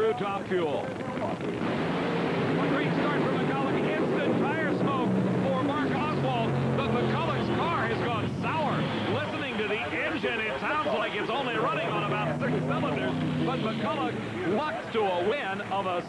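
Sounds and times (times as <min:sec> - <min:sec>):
drag racing engines at full throttle: 0:00.1 - 0:16.0.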